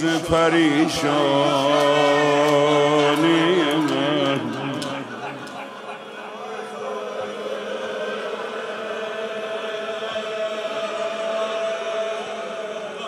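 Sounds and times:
person chanting: 0:00.0 - 0:13.0.

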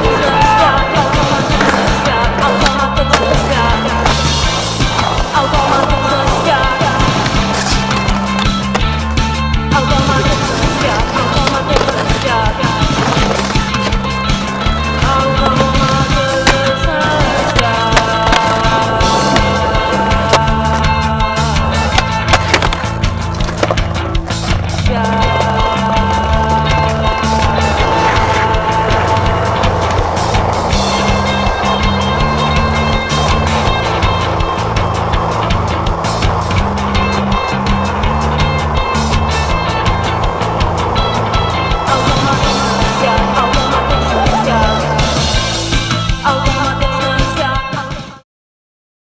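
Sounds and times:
music with bass line and beat: 0:00.0 - 0:47.9.

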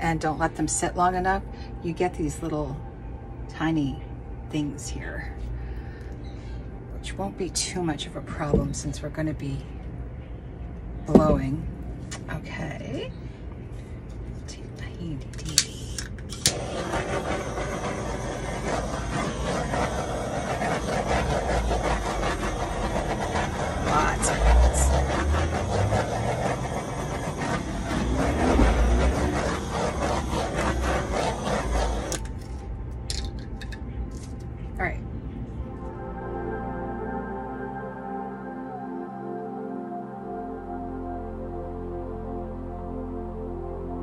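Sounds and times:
hair dryer blowing air: 0:16.4 - 0:32.3.

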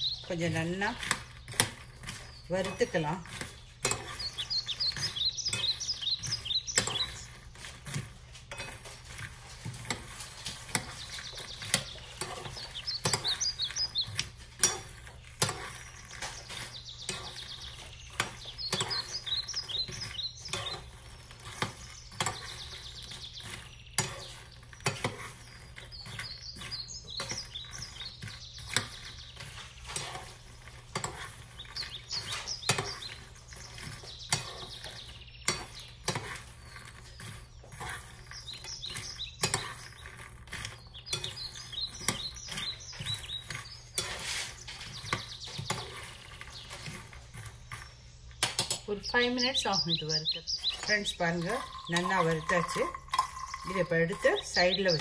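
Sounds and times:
metal spoon scraping seeds in pan: 0:00.0 - 0:55.0.

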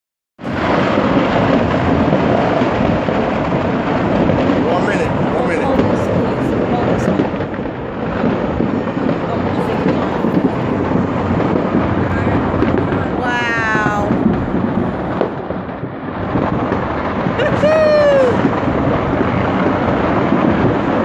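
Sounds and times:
distant fireworks rumble: 0:00.4 - 0:21.0
sharp firework cracks: 0:00.4 - 0:21.0.

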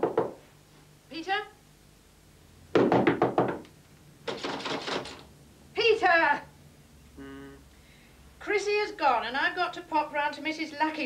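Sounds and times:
knocking on wooden door: 0:00.0 - 0:00.4, 0:02.7 - 0:03.7.

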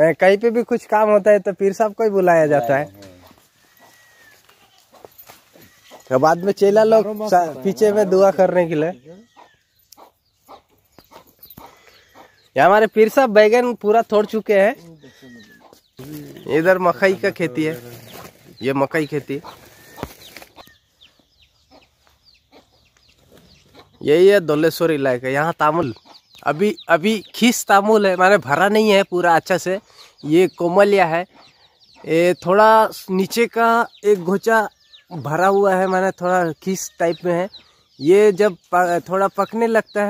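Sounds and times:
birds chirping: 0:00.0 - 0:40.0
faint animal call: 0:02.6 - 0:06.4, 0:08.9 - 0:09.7, 0:14.8 - 0:16.6.

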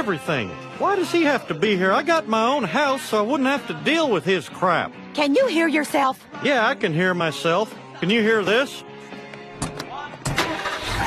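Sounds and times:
truck engine starting and running: 0:09.2 - 0:11.0.

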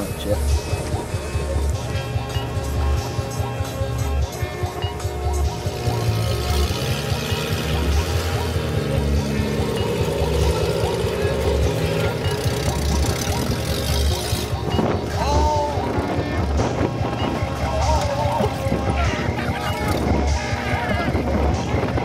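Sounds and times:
music with heavy bass beat: 0:00.0 - 0:22.0.

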